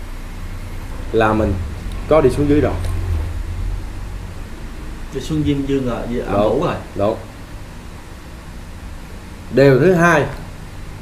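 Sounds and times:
low rumble: 0.0s - 7.9s
faint hiss: 0.0s - 11.0s.

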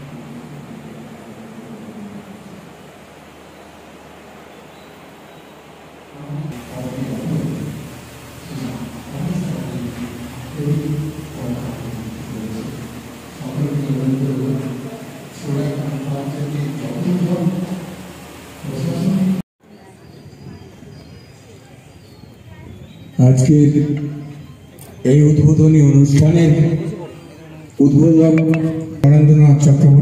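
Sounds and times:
low rumbling background noise: 0.0s - 30.0s.

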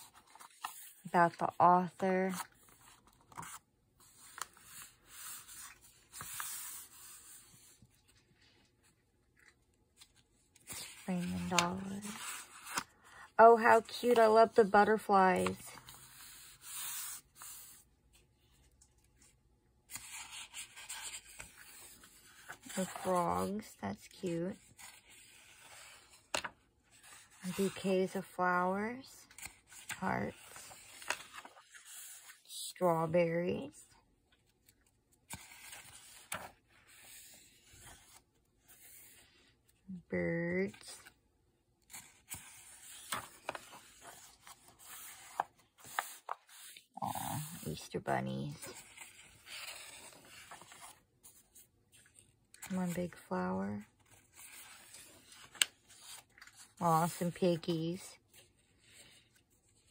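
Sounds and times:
hand rubbing paper pages: 2.4s - 7.8s, 41.9s - 48.0s, 48.7s - 52.2s
hands rubbing paper pages: 41.9s - 48.1s.

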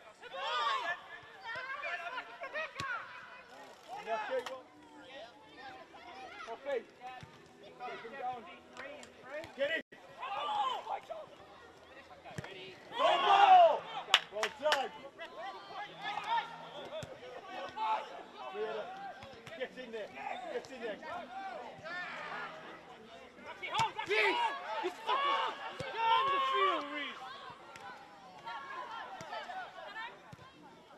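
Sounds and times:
players shouting: 0.1s - 4.5s, 12.8s - 22.7s, 23.4s - 30.4s.

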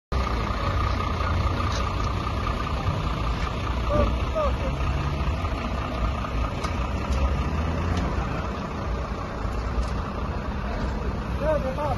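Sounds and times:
diesel engine idling: 0.1s - 11.9s
people talking: 3.8s - 5.0s, 10.3s - 11.9s.

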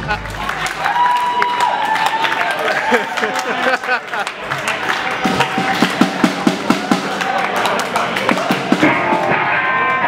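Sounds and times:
drum kit beat: 5.1s - 10.0s
electric guitar notes: 8.8s - 10.0s.

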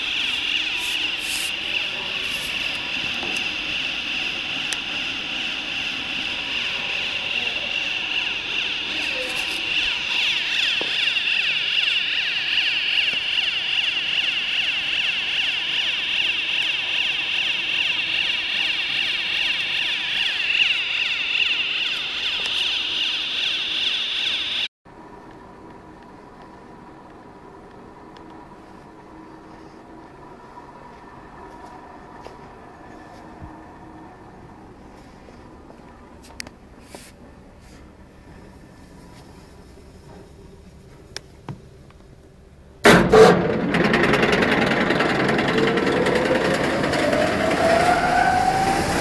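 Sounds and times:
machine high-pitched whine: 0.0s - 24.7s, 42.8s - 49.0s.

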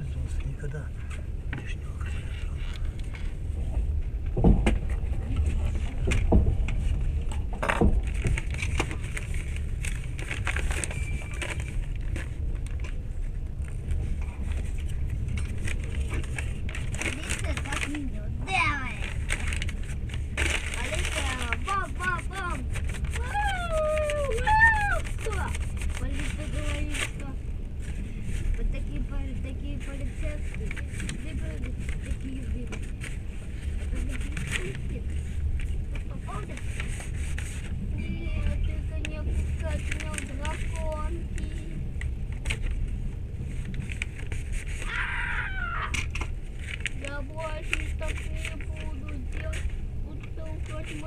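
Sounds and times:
train rumble inside carriage: 0.0s - 51.0s.

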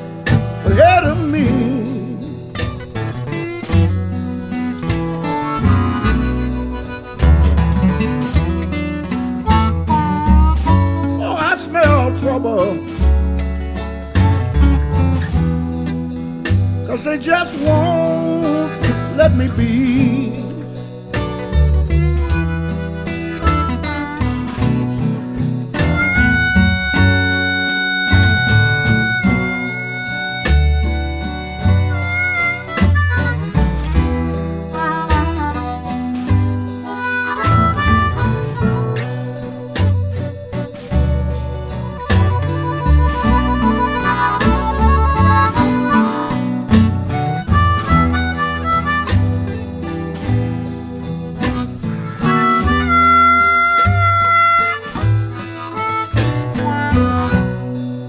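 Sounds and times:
blues harmonica: 0.0s - 58.0s
electric blues band playing: 0.0s - 58.0s.

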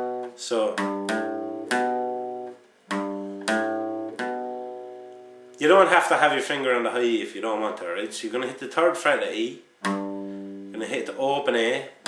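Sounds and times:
acoustic guitar bass notes: 0.0s - 12.0s.

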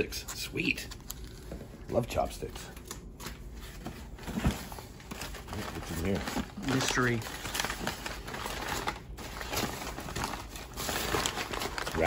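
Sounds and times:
packing paper crumpling: 4.8s - 12.0s.

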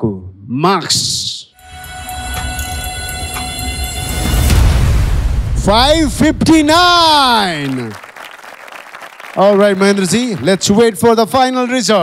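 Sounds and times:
synthesized drone: 1.6s - 7.4s
low rumble: 2.4s - 7.6s.

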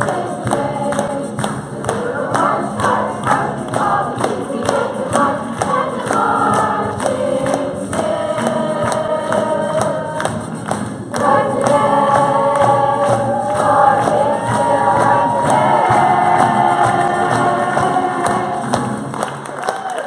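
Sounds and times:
chorus singing: 0.0s - 19.3s
musical accompaniment: 0.0s - 20.0s.

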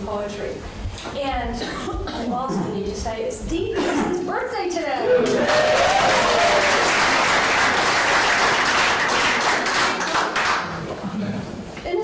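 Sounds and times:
audience applause: 5.1s - 10.9s.

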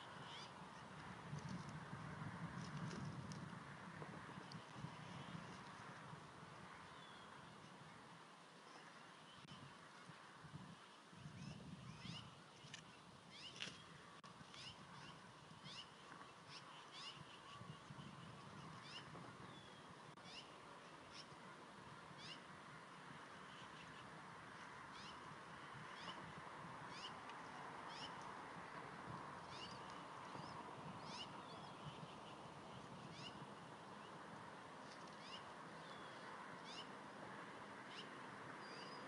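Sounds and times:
eaglets peeping: 33.1s - 33.4s.

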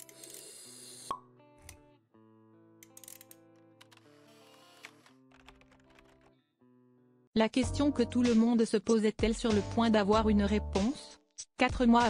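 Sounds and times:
soft background music: 7.4s - 12.0s.

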